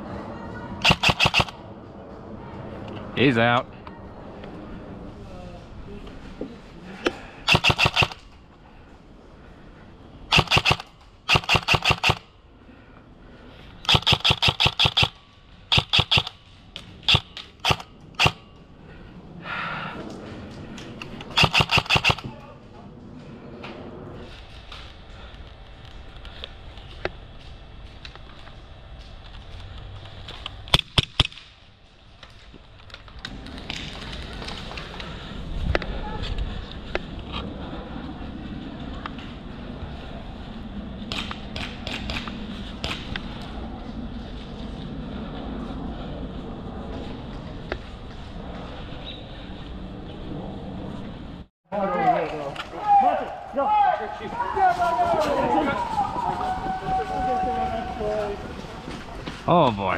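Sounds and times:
airsoft rifle firing bursts: 0.8 - 1.6, 7.5 - 8.2, 10.3 - 12.2, 13.9 - 16.3, 21.3 - 22.3.

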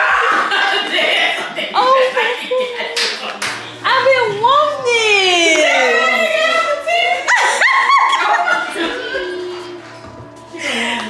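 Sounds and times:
sharp hand claps: 3.0 - 3.6.

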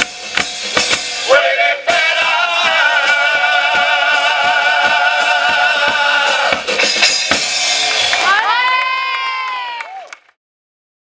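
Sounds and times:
drum beats: 0.0 - 9.5
group singing with guitars: 1.2 - 6.7
crowd cheering: 1.3 - 10.4.

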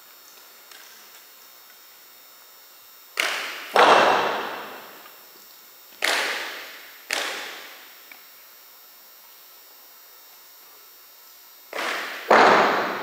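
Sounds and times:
sharp knocks echoing in a gym: 3.2 - 5.0, 6.0 - 7.8, 11.7 - 13.0.

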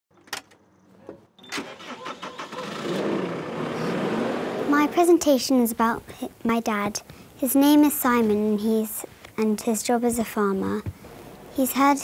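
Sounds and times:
engine cranking and running: 1.4 - 5.0.

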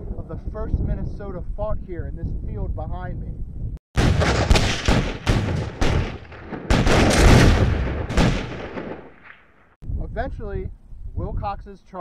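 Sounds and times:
heavy booms: 4.0 - 9.7
gunshots: 4.0 - 9.8.

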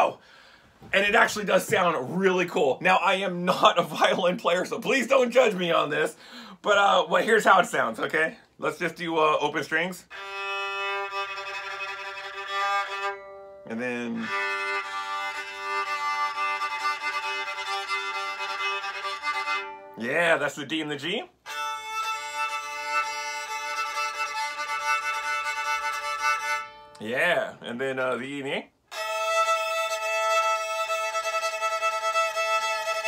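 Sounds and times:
violin long bowed note: 10.1 - 20.0, 21.4 - 27.0, 28.9 - 33.0.

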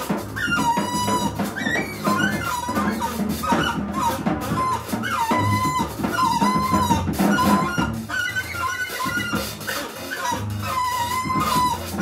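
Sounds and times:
drums and cymbals: 0.0 - 12.0
tenor saxophone wavering notes: 0.4 - 12.0
bowed double bass: 10.4 - 12.0.

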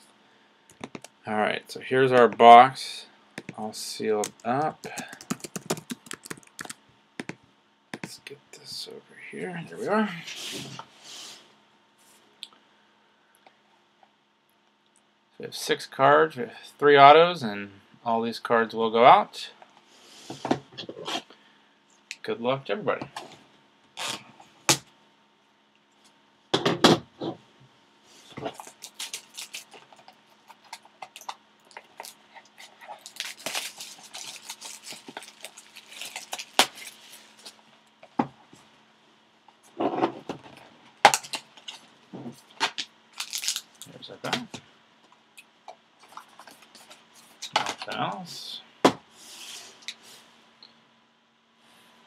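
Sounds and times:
plastic shrink wrap rustling: 28.2 - 37.7, 43.1 - 44.1.

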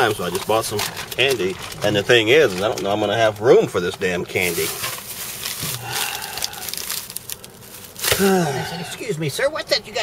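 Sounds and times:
plastic bag crinkling: 0.0 - 3.4, 4.2 - 8.6.

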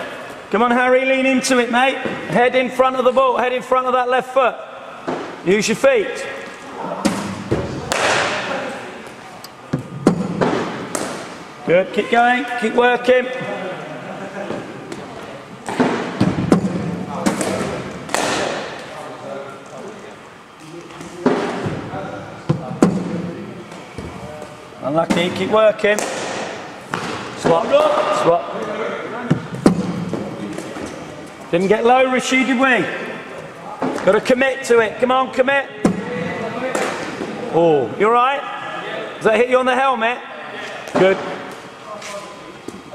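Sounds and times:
cricket ball striking bat: 7.0 - 8.5, 15.7 - 18.8.

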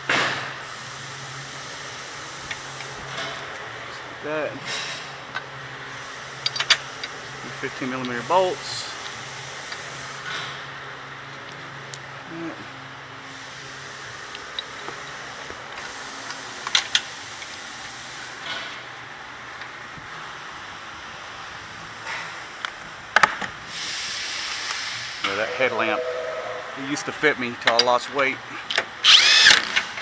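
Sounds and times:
hiss: 0.1 - 3.1, 5.9 - 10.4, 13.2 - 18.4, 23.6 - 25.4
steady low hum: 25.1 - 27.7.

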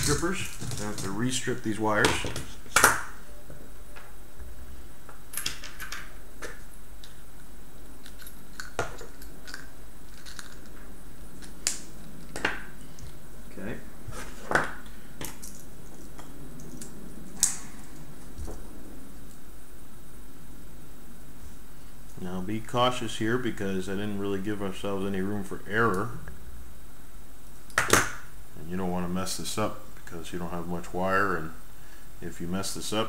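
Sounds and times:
room hiss: 0.0 - 33.0.

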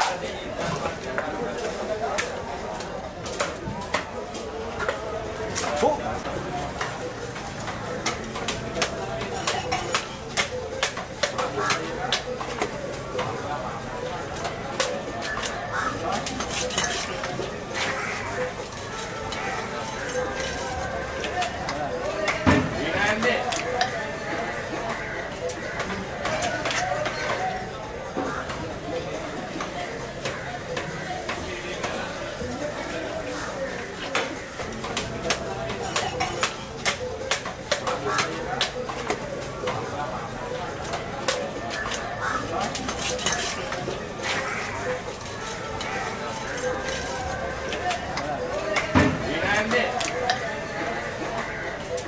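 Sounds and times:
faint voices: 0.0 - 52.0.

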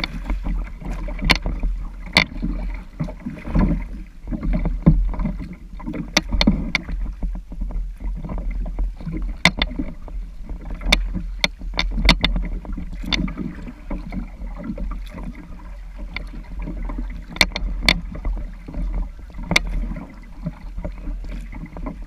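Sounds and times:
low steady rumble: 0.0 - 22.0
water lapping against kayak hull: 0.0 - 22.0.

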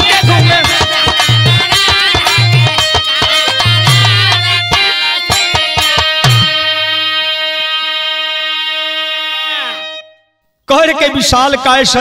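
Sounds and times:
held instrumental note sliding down: 0.3 - 10.2.

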